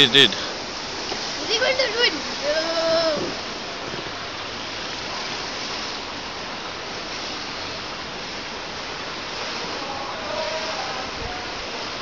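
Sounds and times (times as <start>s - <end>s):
rushing pool water noise: 0.0s - 12.0s
faint distant voices: 9.5s - 12.0s.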